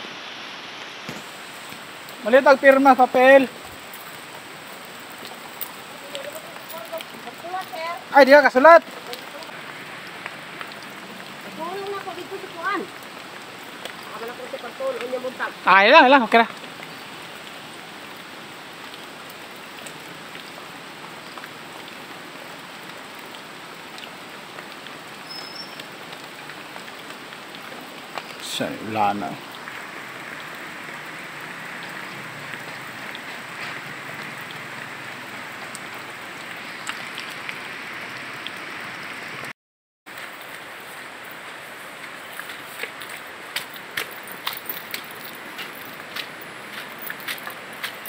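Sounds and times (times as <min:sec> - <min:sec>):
rain falling: 0:00.0 - 0:48.0.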